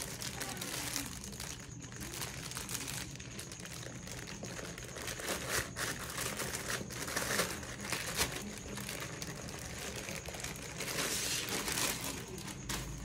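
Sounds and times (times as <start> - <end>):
plastic bag crinkling: 0.0 - 13.0.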